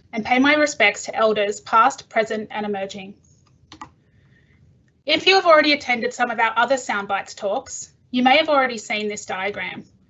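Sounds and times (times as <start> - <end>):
keyboard key clicks: 3.7 - 3.9.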